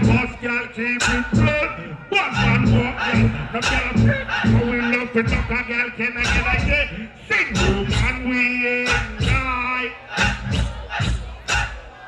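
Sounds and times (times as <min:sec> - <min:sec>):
crowd shouting: 0:00.0 - 0:12.0
dancehall music over sound system: 0:00.0 - 0:12.0.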